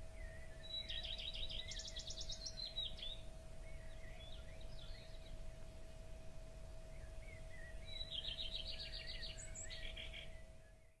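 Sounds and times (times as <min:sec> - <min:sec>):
low steady rumble: 0:00.0 - 0:10.9
small birds singing: 0:00.0 - 0:11.0.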